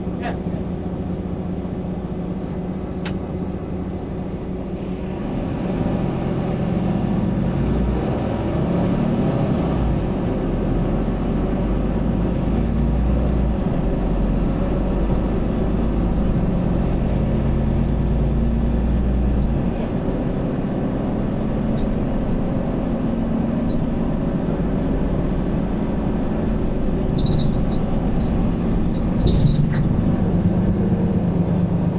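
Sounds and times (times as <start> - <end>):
bus diesel engine droning: 0.0 - 31.9.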